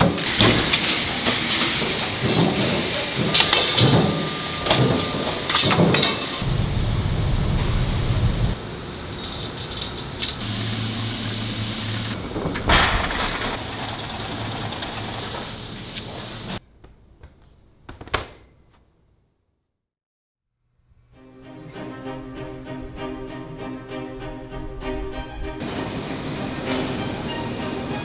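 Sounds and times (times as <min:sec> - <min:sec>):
machine hum: 0:00.2 - 0:16.6
low steady drone: 0:06.4 - 0:08.6.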